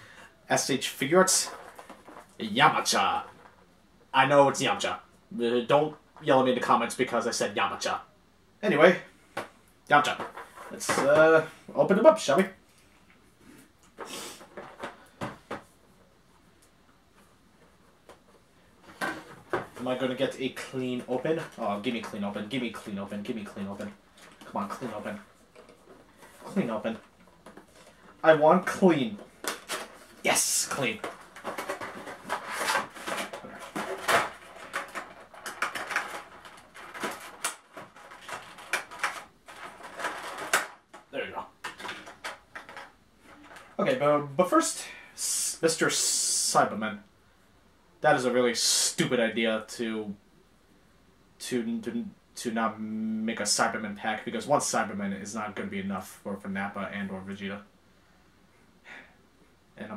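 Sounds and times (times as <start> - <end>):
plastic and cardboard crinkling: 1.2 - 3.6, 9.4 - 11.5, 17.2 - 43.8.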